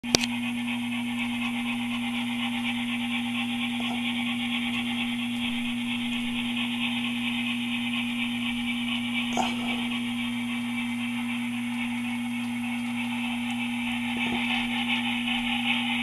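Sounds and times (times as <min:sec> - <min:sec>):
low electrical hum: 0:00.0 - 0:16.0
high whir of model locomotives: 0:00.2 - 0:16.0.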